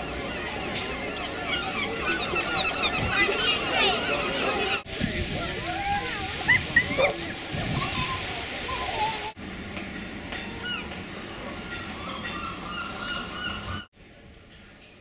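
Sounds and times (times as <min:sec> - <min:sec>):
distant voices and children calling: 0:00.0 - 0:09.4.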